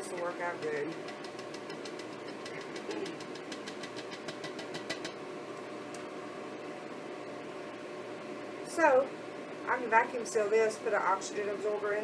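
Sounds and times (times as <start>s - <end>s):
cup tapping against glass jar: 0.9s - 5.2s.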